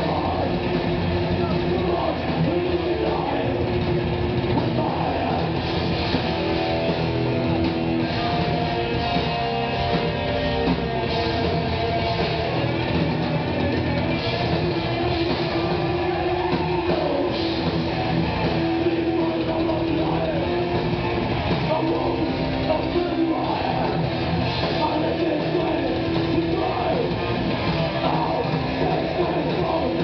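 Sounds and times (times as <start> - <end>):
bass guitar: 0.0 - 30.0
distorted electric guitars: 0.0 - 30.0
drum kit: 0.0 - 30.0
live metal band playing: 0.0 - 30.0.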